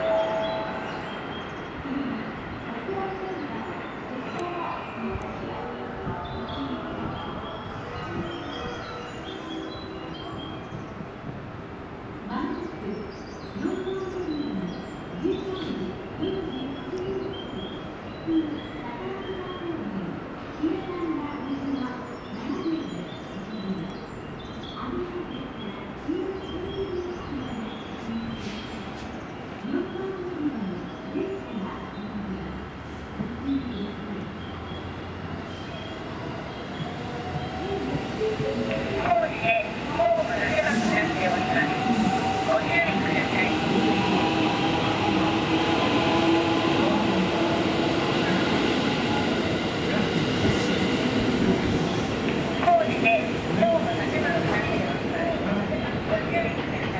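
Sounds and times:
steady background noise: 0:00.0 - 0:56.9
train rumbling on rails: 0:00.0 - 0:56.9.

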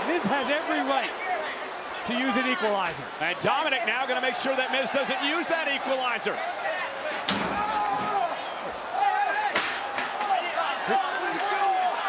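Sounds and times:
arena voices: 0:00.0 - 0:12.0.

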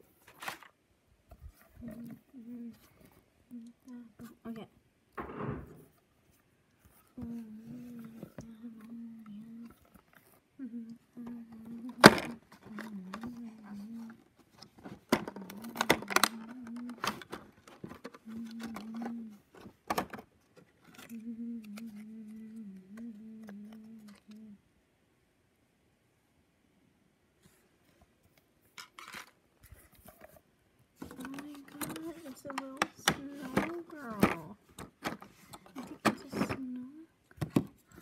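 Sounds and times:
person humming: 0:01.8 - 0:02.9, 0:03.5 - 0:04.6, 0:07.2 - 0:09.8, 0:10.6 - 0:14.2, 0:15.2 - 0:17.2, 0:18.1 - 0:19.4, 0:21.0 - 0:24.6.

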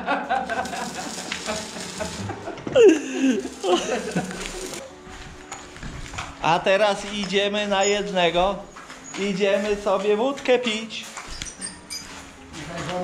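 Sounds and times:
welding arc crackling: 0:00.2 - 0:04.8.

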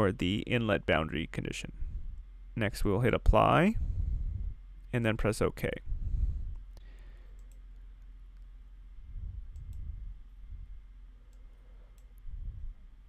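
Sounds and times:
low room rumble: 0:00.0 - 0:13.0
computer mouse clicking: 0:06.7 - 0:08.6, 0:09.5 - 0:09.9, 0:11.3 - 0:12.2.

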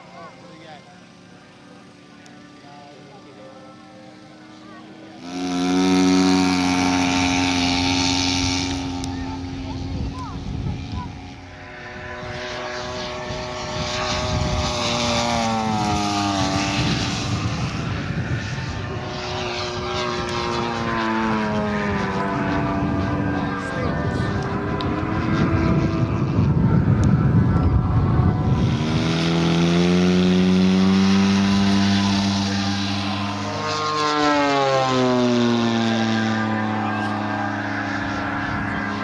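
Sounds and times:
model aircraft engine and propeller: 0:00.0 - 0:39.0.

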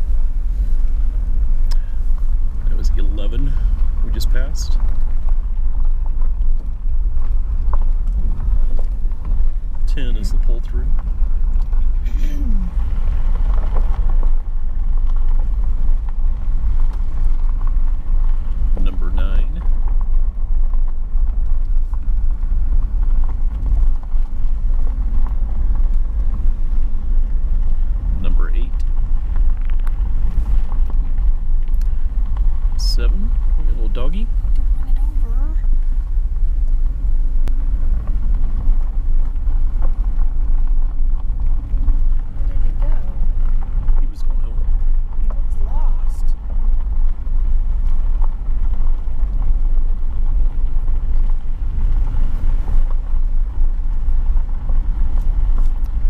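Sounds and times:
vehicle driving on gravel: 0:00.0 - 0:56.0.

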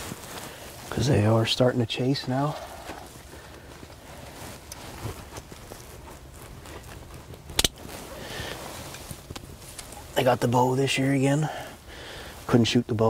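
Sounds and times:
clothing and gear rustling: 0:00.0 - 0:13.0.

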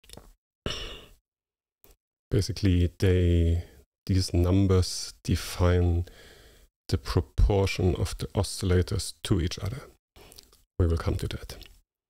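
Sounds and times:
man breathing: 0:06.0 - 0:06.7.

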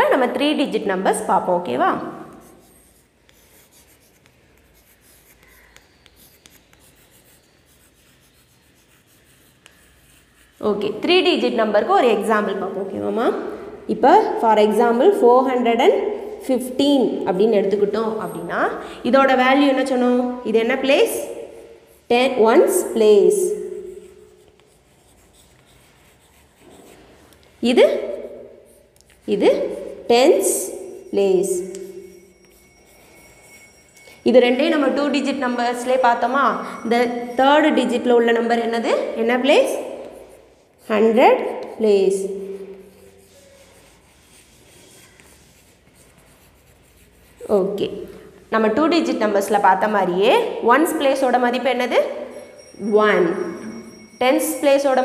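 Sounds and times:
chalk scratching on chalkboard: 0:02.0 - 0:11.5, 0:21.1 - 0:34.0, 0:39.4 - 0:48.2.

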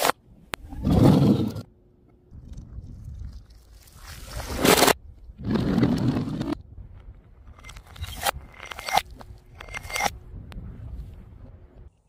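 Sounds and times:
faint low rumble: 0:08.4 - 0:12.0.

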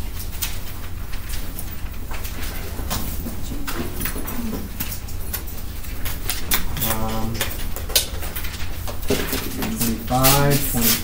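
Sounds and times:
steady low hum: 0:00.0 - 0:11.0
faint murmur: 0:03.2 - 0:05.1.

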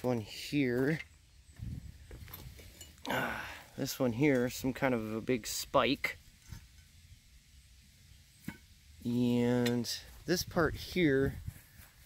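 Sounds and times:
wind rumbling on microphone: 0:01.5 - 0:02.7, 0:10.2 - 0:12.0.

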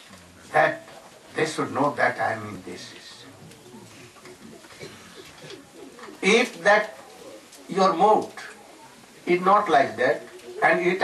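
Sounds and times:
birds cooing: 0:02.5 - 0:11.0.

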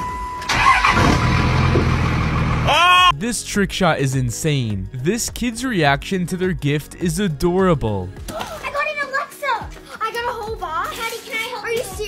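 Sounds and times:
short steady beep: 0:00.0 - 0:00.5
vehicle engine starting and running: 0:00.4 - 0:02.7.

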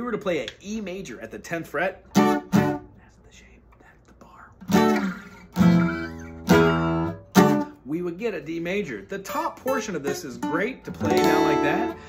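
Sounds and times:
acoustic guitar strumming chords: 0:02.1 - 0:02.9, 0:04.7 - 0:07.8, 0:09.2 - 0:12.0.

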